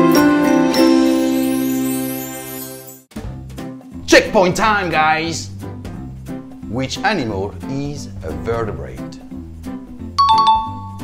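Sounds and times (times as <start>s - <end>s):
background music: 0.0s - 11.0s
two-note chime: 10.2s - 11.0s.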